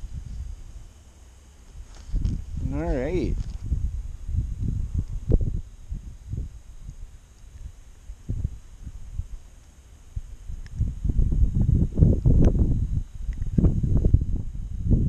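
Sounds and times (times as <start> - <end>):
clothing rustling on microphone: 1.7 - 3.8.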